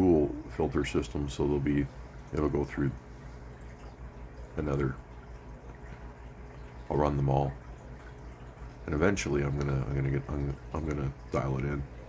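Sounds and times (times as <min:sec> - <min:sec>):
aquarium bubbling water: 0:00.0 - 0:12.0.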